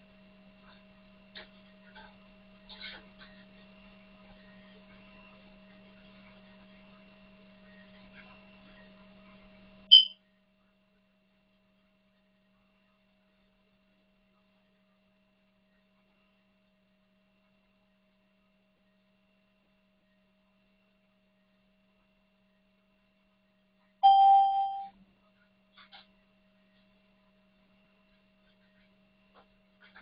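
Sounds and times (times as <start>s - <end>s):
faint electrical hum: 0.0s - 30.0s
bell-like chime: 9.9s - 10.1s, 24.0s - 24.9s
short high electronic beep: 9.9s - 10.1s, 24.0s - 24.9s.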